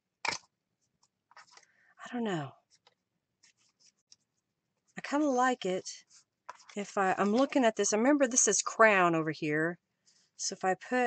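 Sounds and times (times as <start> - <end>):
paper rustling: 2.7 - 4.3.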